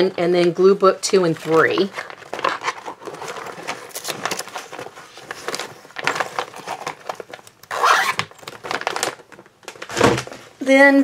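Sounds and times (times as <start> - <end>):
paper rustling and sliding: 1.3 - 7.5.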